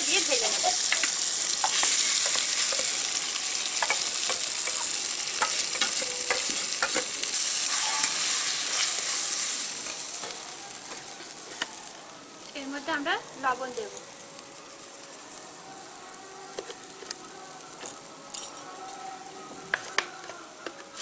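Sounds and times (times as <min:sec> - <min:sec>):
paste sizzling in hot oil: 0:00.0 - 0:15.0
spatula clinking and scraping pan: 0:03.8 - 0:08.9.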